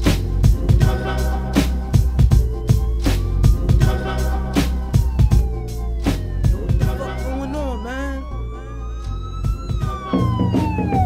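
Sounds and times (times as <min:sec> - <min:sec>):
hip hop beat: 0:00.0 - 0:11.0
police siren wailing: 0:02.2 - 0:11.0.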